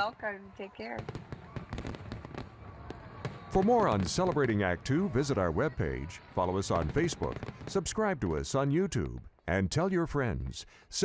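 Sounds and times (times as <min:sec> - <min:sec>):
fireworks crackling and popping: 0:00.9 - 0:09.3.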